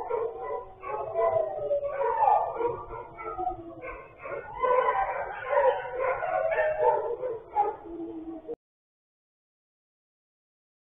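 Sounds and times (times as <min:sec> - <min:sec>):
dogs howling and whining: 0:00.0 - 0:08.6.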